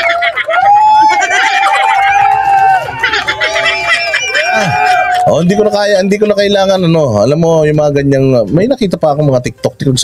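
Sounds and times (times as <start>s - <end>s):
music: 4.9s - 10.0s.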